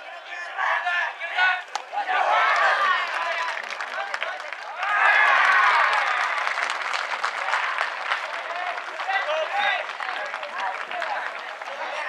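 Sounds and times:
crowd cheering: 0.0s - 12.0s
crowd clapping: 1.6s - 12.0s.

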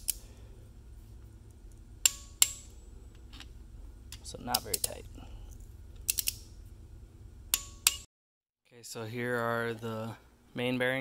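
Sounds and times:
torque wrench clicking: 6.0s - 6.5s.

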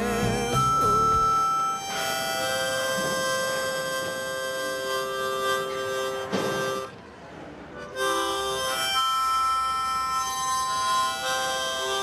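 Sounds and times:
harmonica holding a chord: 0.0s - 7.0s, 7.8s - 12.0s.

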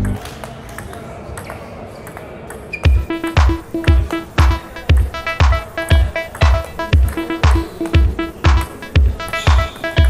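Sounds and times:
murmur of voices: 0.0s - 10.0s
table tennis ball hits: 0.0s - 10.0s.

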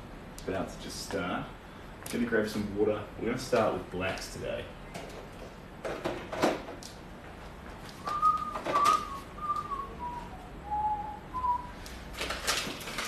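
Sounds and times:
person whistling a tune: 8.0s - 11.8s.

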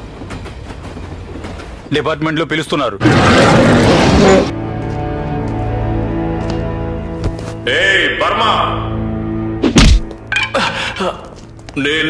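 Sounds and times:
heavy thud of a blow: 9.6s - 10.1s.

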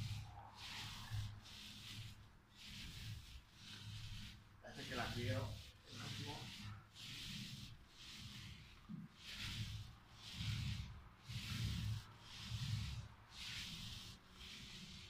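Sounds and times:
paint roller swishing: 0.0s - 15.0s.

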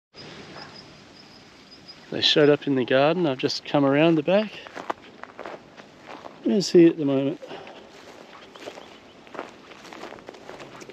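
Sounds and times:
faint outdoor hiss: 0.2s - 10.9s.

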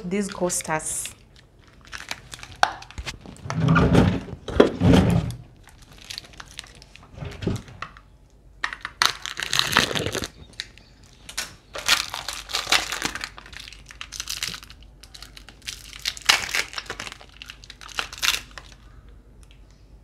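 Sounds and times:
plastic wrapping crinkling: 0.6s - 3.6s, 5.3s - 8.0s, 8.6s - 19.6s.

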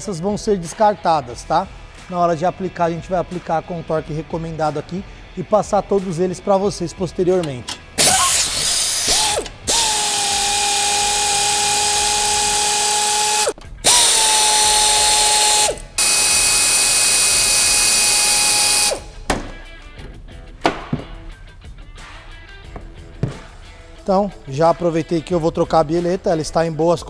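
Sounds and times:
power ratchet whining: 7.4s - 19.2s.

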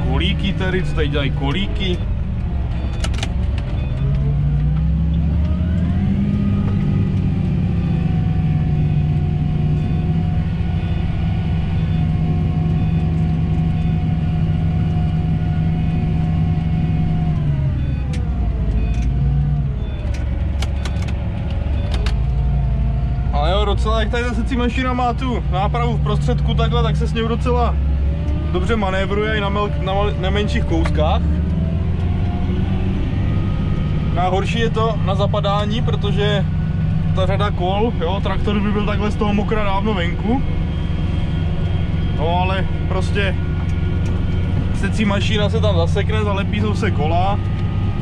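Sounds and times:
tractor engine from inside cab: 0.0s - 48.0s.

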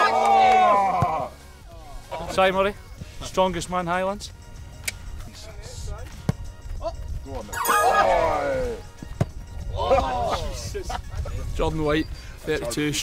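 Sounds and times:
background music: 0.0s - 11.2s
men calling out: 7.6s - 8.9s.

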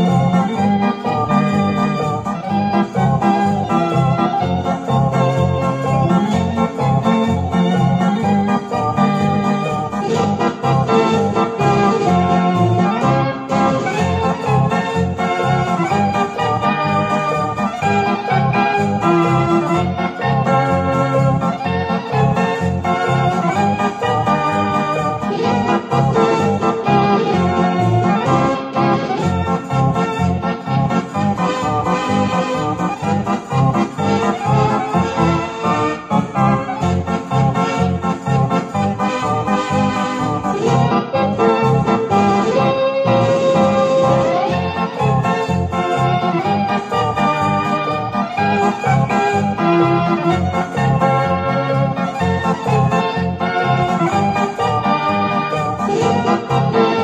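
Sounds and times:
dance organ music on stereo: 0.0s - 57.0s.

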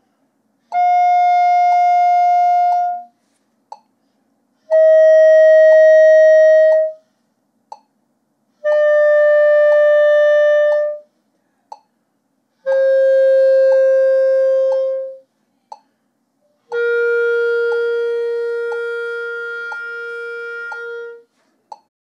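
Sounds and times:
clarinet held notes: 0.7s - 3.2s, 4.6s - 7.0s, 8.6s - 11.1s, 12.6s - 15.3s, 16.4s - 21.3s
soft ticks keeping time: 3.7s - 4.0s, 7.7s - 8.0s, 11.7s - 12.0s, 14.6s - 15.1s, 15.7s - 15.9s, 16.7s - 21.9s.

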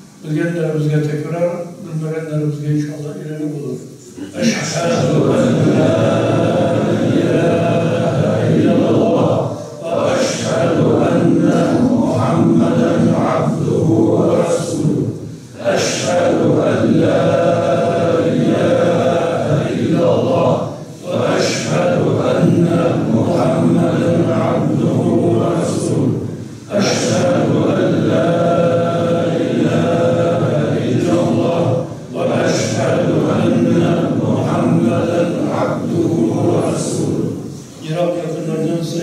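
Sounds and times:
man chanting melodic recitation: 0.2s - 39.0s.

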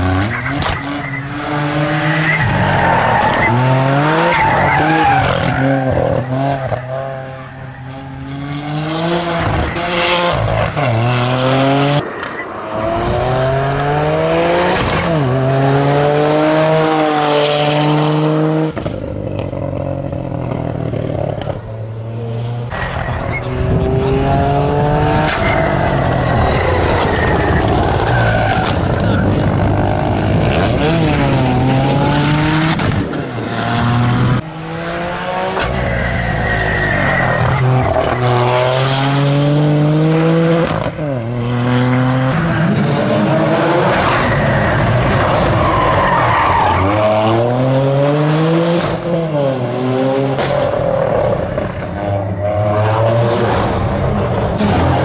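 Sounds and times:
tyres squealing and skidding: 0.0s - 8.5s, 12.0s - 17.4s, 22.7s - 31.6s, 34.9s - 39.2s, 42.3s - 47.8s
car engine revving hard: 28.6s - 35.8s, 37.5s - 45.5s.

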